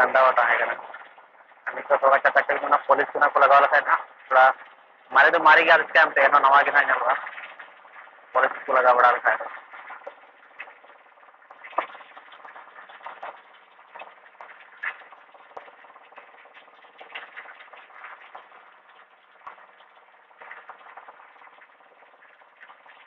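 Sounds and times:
water pump humming: 0.0 - 23.0
small clicks and knocks: 9.4 - 23.0.

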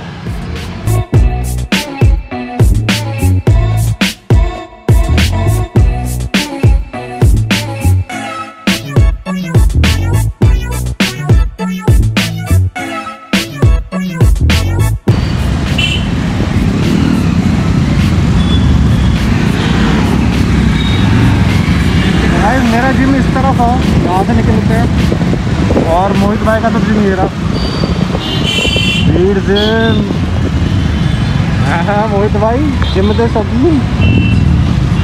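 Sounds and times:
road noise: 0.0 - 35.0
motorcycle engine rumble: 15.1 - 35.0.

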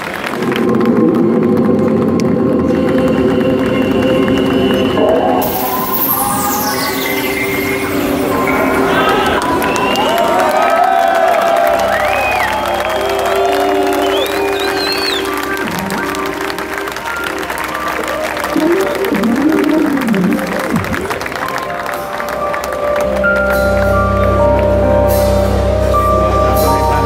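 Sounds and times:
audience applauding and cheering: 0.0 - 27.0
low drone: 0.0 - 27.0
sustained keyboard chords: 0.4 - 27.0.

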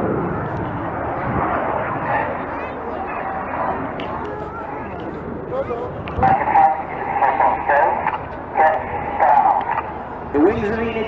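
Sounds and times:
indistinct voices talking: 0.2 - 11.0.

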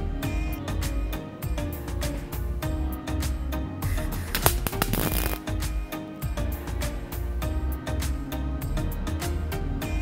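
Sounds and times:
background music with beat: 0.0 - 10.0
welder arc crackling: 4.3 - 5.6.

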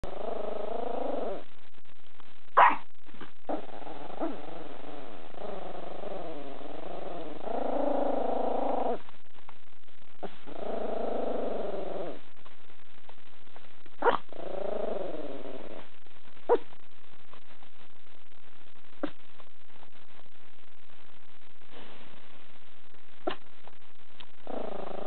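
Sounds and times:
pet growling: 0.0 - 1.5, 3.5 - 9.0, 10.2 - 12.2, 14.0 - 15.9, 24.4 - 25.0.

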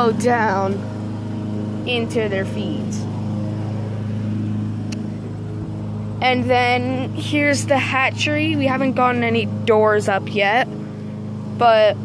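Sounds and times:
lawn mower engine drone: 0.0 - 12.0.

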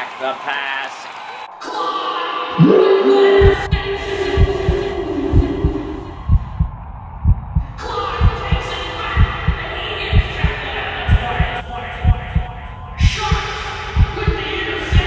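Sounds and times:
heartbeat thumps: 2.6 - 15.0.

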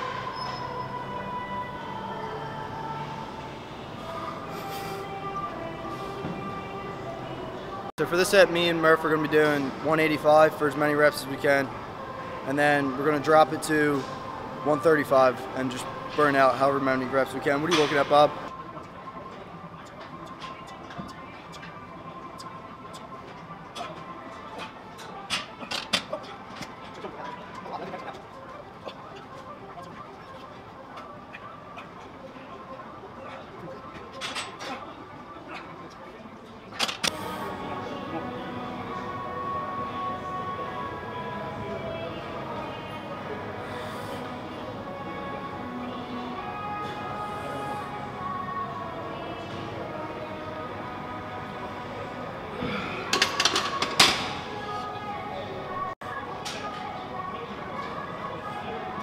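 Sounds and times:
background music with held tones: 0.0 - 59.0
gym room hum: 0.0 - 59.0.

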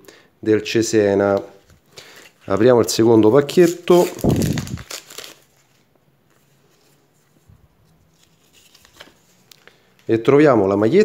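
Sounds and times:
soft rustles of stickers: 1.6 - 10.2
wrapper crinkling and tearing: 2.1 - 5.9.

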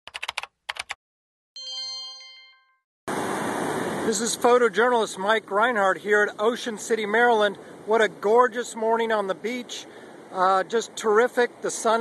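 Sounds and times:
bright chime: 1.6 - 2.8
surf rushing: 3.1 - 12.0.

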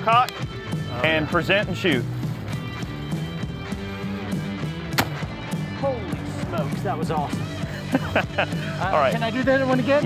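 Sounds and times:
background music: 0.0 - 10.0
rifle shot: 4.9 - 5.4.

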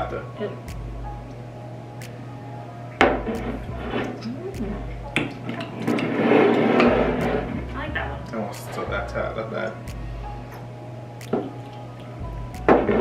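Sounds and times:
wordless vocal sounds: 3.0 - 13.0.

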